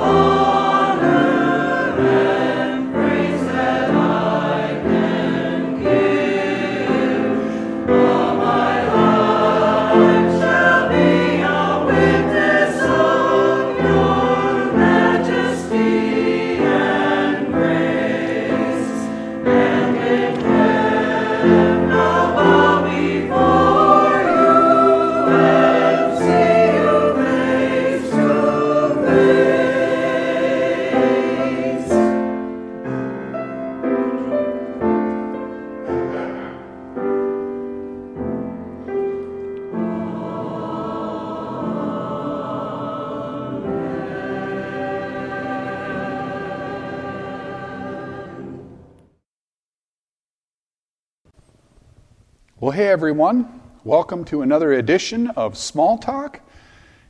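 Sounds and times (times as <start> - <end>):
choir singing: 0.0 - 49.2.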